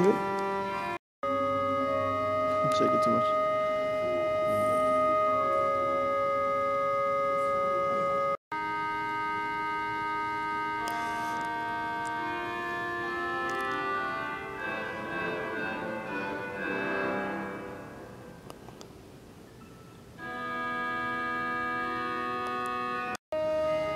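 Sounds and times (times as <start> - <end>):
pipe organ playing sustained chords: 0.0 - 18.6, 20.1 - 23.9.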